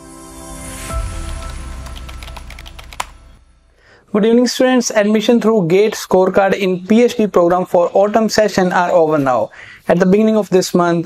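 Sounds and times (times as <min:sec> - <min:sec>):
keyboard typing clicks: 0:01.2 - 0:03.2.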